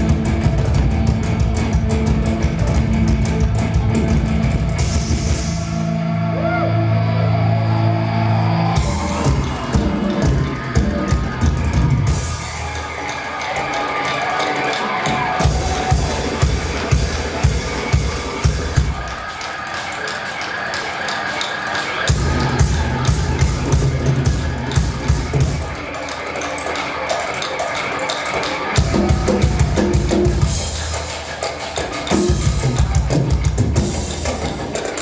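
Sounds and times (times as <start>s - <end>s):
distorted guitar and bass chords: 0.0s - 13.1s, 22.1s - 25.8s
rapid drum hits: 13.7s - 19.1s.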